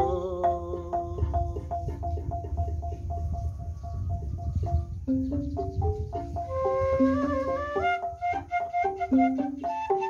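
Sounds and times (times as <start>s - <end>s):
bamboo flute: 0.0s - 10.0s
wooden xylophone notes: 0.0s - 10.0s.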